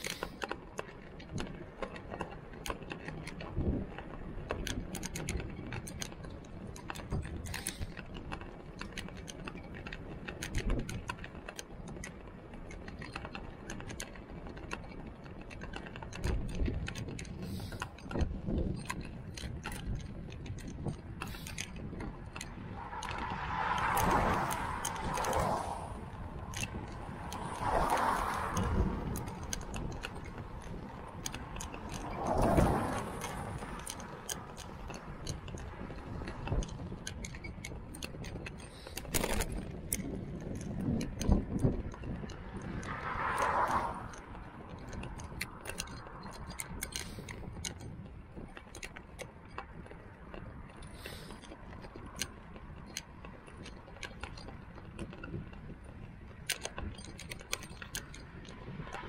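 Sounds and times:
bike clicking and rattling: 0.0s - 59.0s
low tyre rumble: 0.0s - 59.0s.

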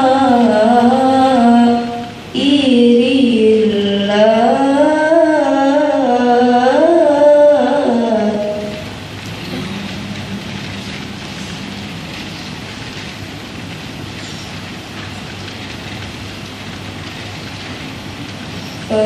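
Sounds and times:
hall background hiss: 0.0s - 19.0s.

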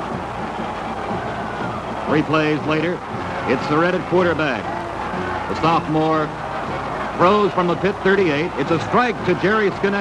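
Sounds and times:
old film soundtrack noise: 0.0s - 10.0s.

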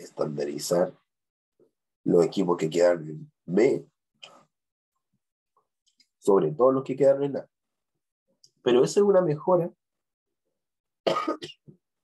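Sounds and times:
man coughing: 11.1s - 11.7s.

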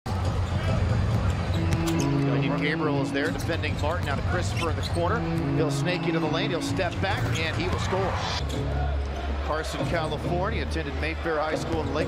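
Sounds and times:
arena crowd noise: 0.1s - 12.0s.

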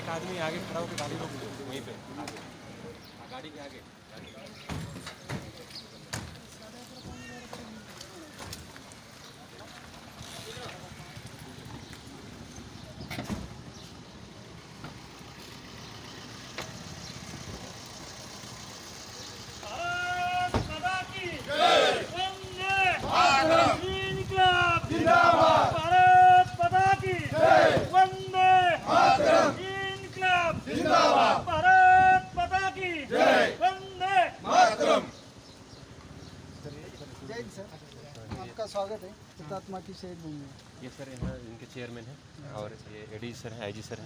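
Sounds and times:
street noise: 0.0s - 44.0s
car engine idling: 13.6s - 33.7s
men shouting a chant: 19.6s - 35.2s.

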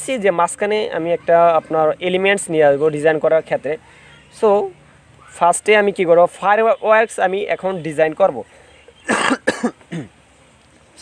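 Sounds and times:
person coughing: 9.0s - 10.1s.

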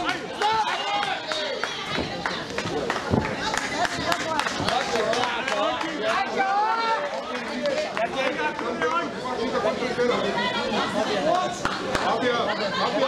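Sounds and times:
spectators chattering: 0.0s - 13.0s.

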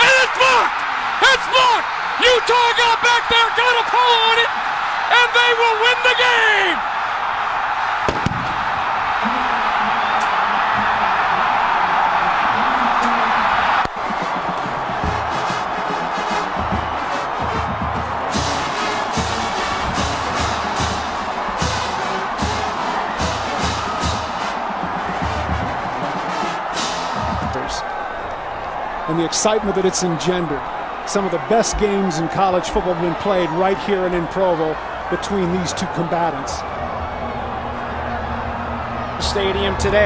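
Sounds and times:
stadium crowd roaring and cheering: 0.0s - 40.0s
music with thumping beat: 16.4s - 27.6s.

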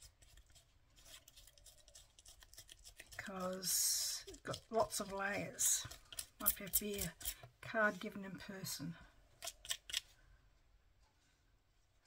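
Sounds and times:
eraser scratching on card: 0.0s - 7.4s.

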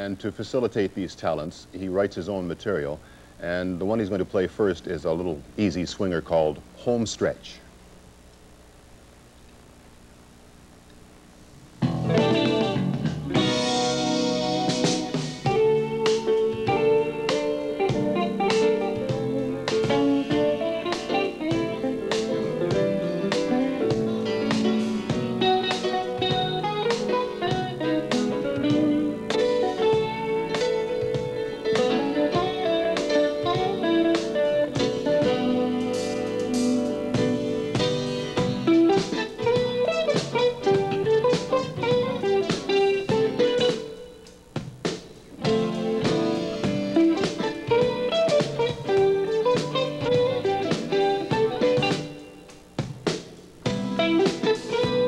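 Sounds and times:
low hiss: 0.0s - 55.0s
jazz band swing tune: 11.8s - 44.0s, 44.6s - 55.0s
electric guitar melody: 11.8s - 55.0s.

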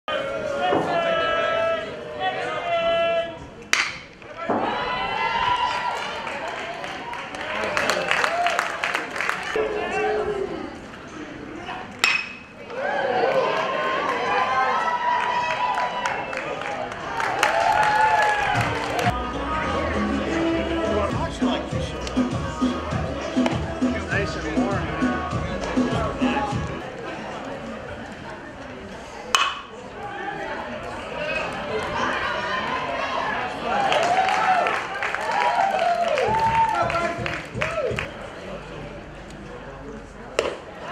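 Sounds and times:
spectators chattering: 0.1s - 40.9s
metal bat hitting ball: 3.7s - 4.2s, 12.0s - 12.5s, 29.3s - 29.7s.

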